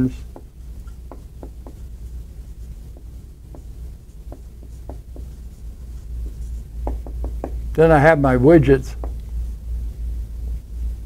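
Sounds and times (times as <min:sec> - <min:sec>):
marker writing on whiteboard: 0:00.0 - 0:07.6, 0:08.9 - 0:09.3
low room hum: 0:00.0 - 0:11.0.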